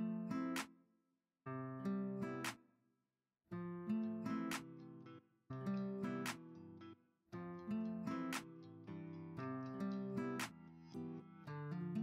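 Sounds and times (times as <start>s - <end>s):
strummed acoustic guitar chords: 7.4s - 12.0s.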